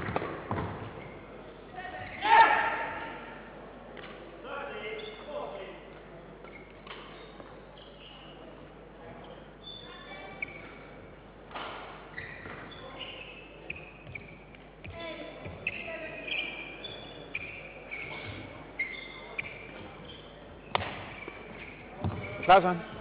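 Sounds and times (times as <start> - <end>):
shoes squeaking on court: 0.2 - 1.4, 4.9 - 5.5, 6.4 - 23.0.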